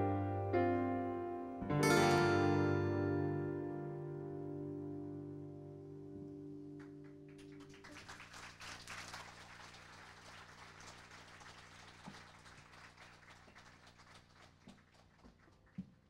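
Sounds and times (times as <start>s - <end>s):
audience applause: 6.8s - 15.9s.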